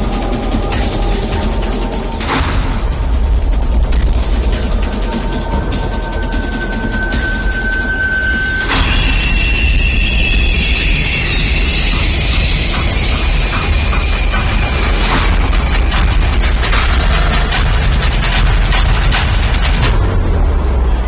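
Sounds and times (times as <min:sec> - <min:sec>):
sharp ticking percussive hits: 0:00.0 - 0:20.3
heavy low drone: 0:00.0 - 0:21.0.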